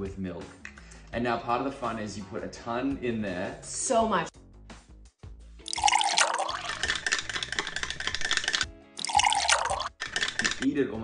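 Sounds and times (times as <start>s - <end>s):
background music: 0.0s - 11.0s
milk pouring into a glass: 5.6s - 10.7s.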